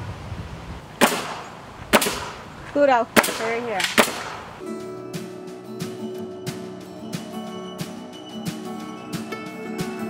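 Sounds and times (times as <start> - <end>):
nail gun shots: 1.0 - 2.4, 3.2 - 4.5.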